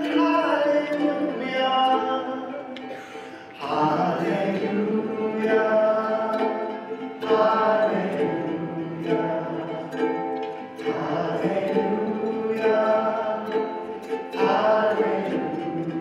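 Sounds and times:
man singing: 0.0 - 16.0
ukulele strumming: 0.0 - 16.0.

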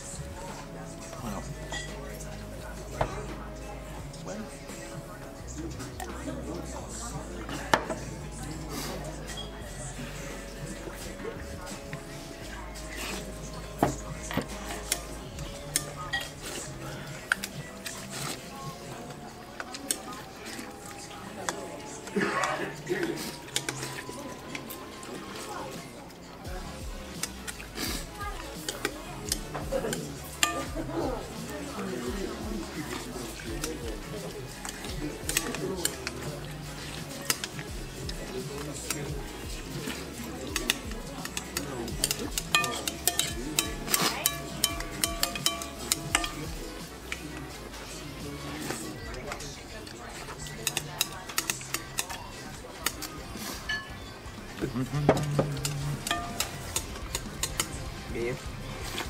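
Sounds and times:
background music: 0.0 - 59.0
utensils clinking on glass bowls: 0.1 - 4.2, 11.8 - 26.0, 27.0 - 59.0
spoon clinking against glass bowl: 1.6 - 2.2, 14.5 - 16.4, 28.6 - 30.9, 39.6 - 47.4, 53.6 - 54.1, 55.2 - 57.8.

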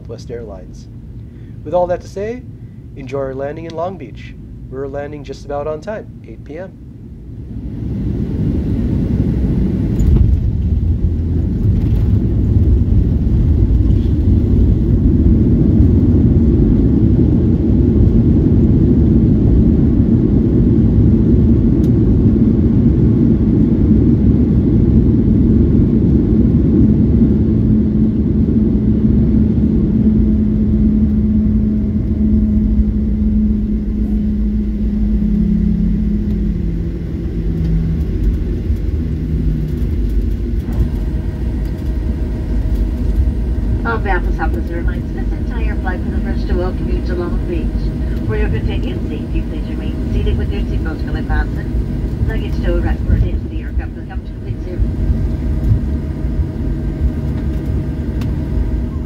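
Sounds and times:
jet engines and runway rumble: 0.0 - 59.0
hum stepping down in pitch: 7.4 - 59.0.

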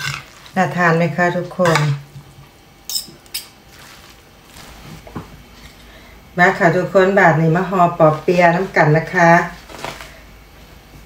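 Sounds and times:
soft papery rustle: 3.7 - 5.0.

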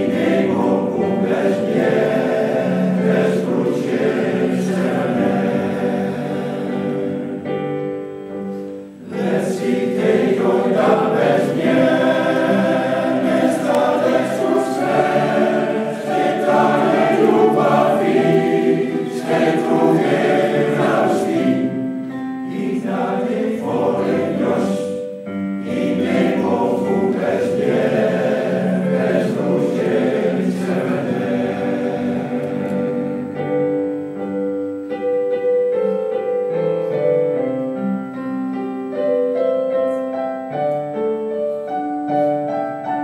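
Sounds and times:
men's choir singing: 0.0 - 7.6, 9.0 - 33.9
piano accompaniment: 0.0 - 43.0.

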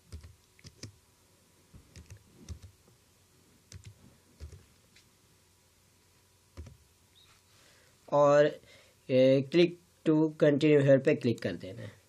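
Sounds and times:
keyboard typing: 0.0 - 1.0, 1.9 - 2.8, 3.7 - 4.7, 6.6 - 6.8.

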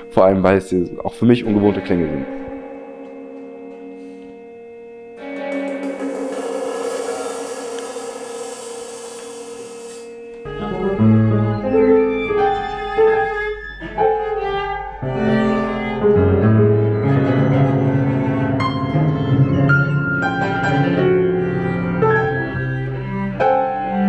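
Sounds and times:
sustained tones: 0.0 - 12.7
piano violin and cello notes: 0.0 - 24.0
suspended cymbal wash: 5.2 - 10.4.

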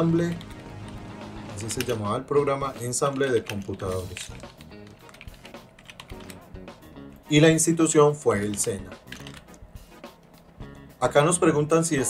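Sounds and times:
keyboard typing: 0.0 - 7.3, 8.3 - 9.6
soft background music: 0.0 - 12.0.

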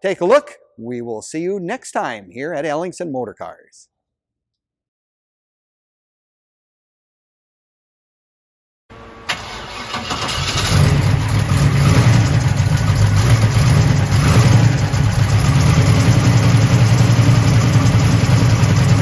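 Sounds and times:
car engine starting and idling: 8.9 - 19.0.

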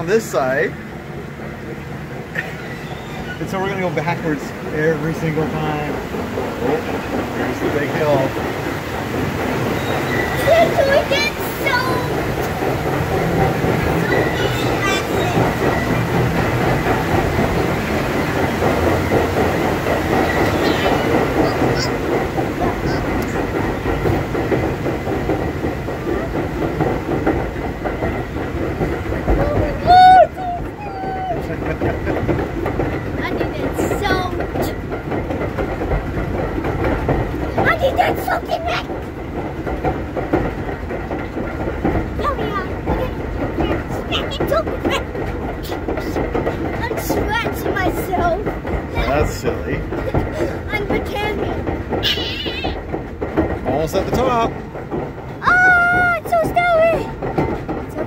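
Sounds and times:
conveyor clattering: 0.0 - 58.0.

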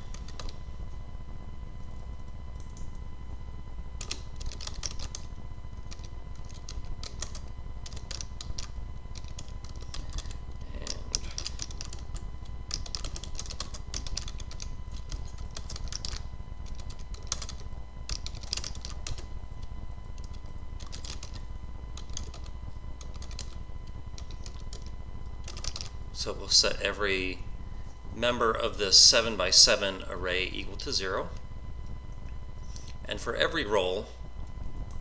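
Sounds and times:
computer keyboard typing: 0.0 - 0.6, 4.0 - 19.3, 20.1 - 23.6, 24.2 - 25.9
steady low hum: 0.0 - 35.0.

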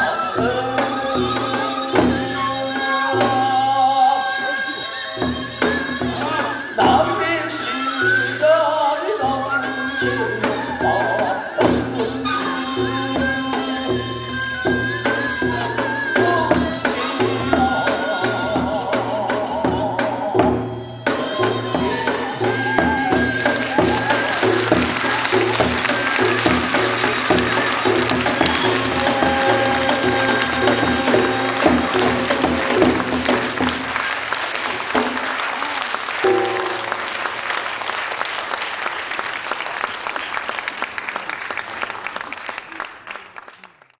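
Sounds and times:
wind instrument melody: 0.0 - 38.3
steady drum rhythm: 9.3 - 37.8
audience applauding: 22.8 - 44.0.

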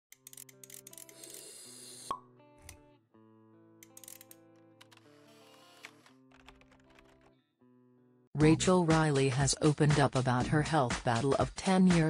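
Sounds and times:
soft background music: 0.1 - 7.3, 8.3 - 12.0.

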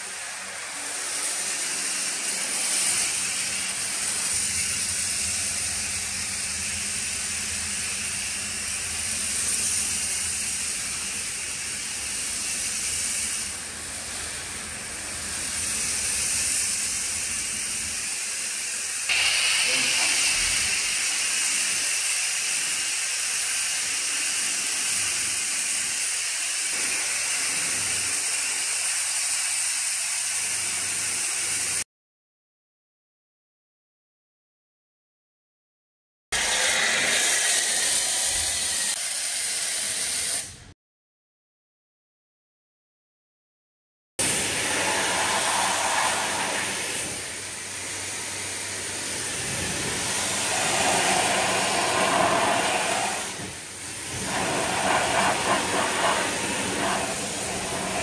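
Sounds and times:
foam lance spray hissing: 0.7 - 31.8, 44.2 - 58.0.

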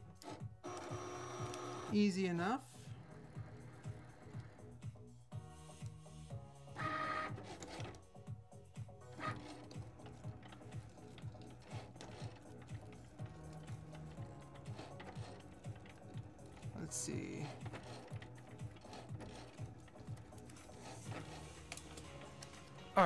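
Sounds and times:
cutting machine motors whirring: 0.0 - 2.0, 2.9 - 4.8, 6.7 - 8.2, 9.0 - 23.0
soft background music: 0.0 - 23.0.

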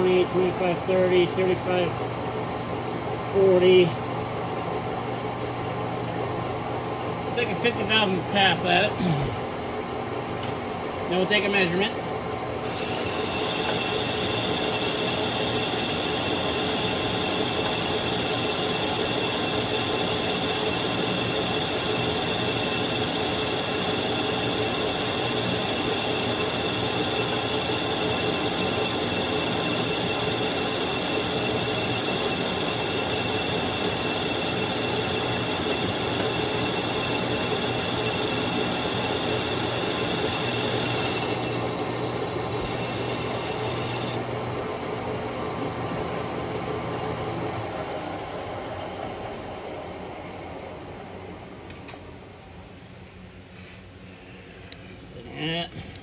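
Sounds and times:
high ringing tone of cutting tool: 12.6 - 44.2
metal lathe drone: 12.6 - 44.2.

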